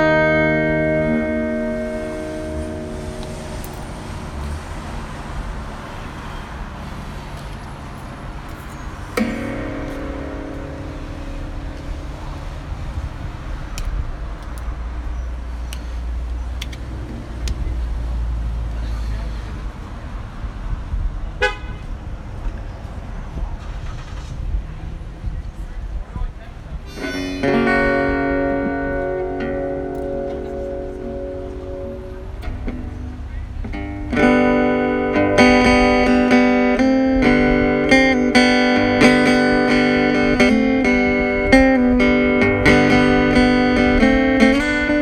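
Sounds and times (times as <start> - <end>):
cars passing: 0.0 - 45.0
ringing note: 26.9 - 28.3.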